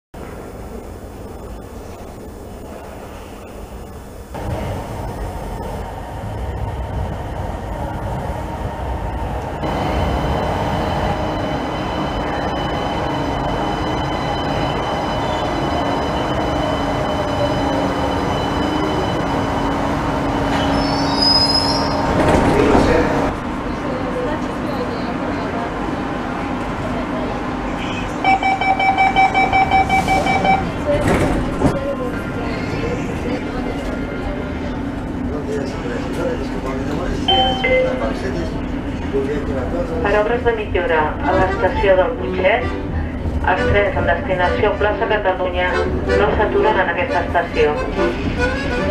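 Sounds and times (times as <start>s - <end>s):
metro train arriving: 0.2s - 48.9s
rapid electronic beeping: 9.6s - 21.1s, 28.3s - 30.7s
high brake squeal: 20.6s - 22.1s.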